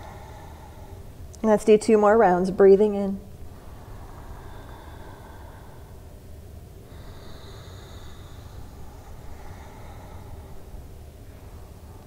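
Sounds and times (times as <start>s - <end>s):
person breathing deeply: 0.0s - 1.3s, 3.3s - 12.0s
low room tone hum: 0.0s - 12.0s.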